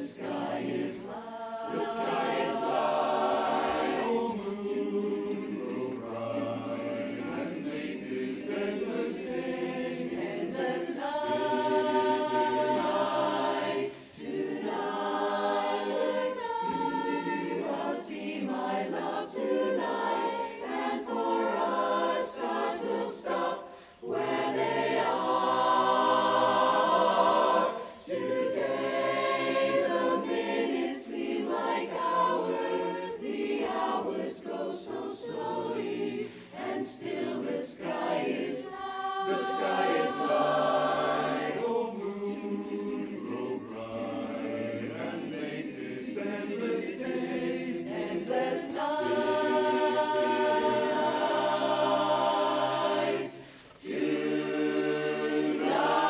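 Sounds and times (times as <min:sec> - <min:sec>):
chorus singing a cappella: 0:00.0 - 0:56.0.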